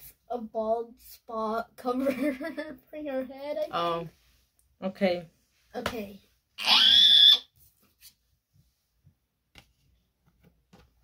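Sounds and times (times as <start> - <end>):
boy squealing: 6.6 - 7.5.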